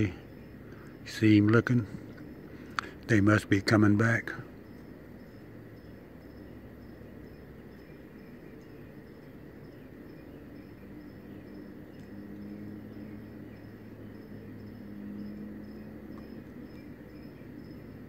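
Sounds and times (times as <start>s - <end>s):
cricket chirping: 0.0s - 18.0s
low steady hum: 0.0s - 18.0s.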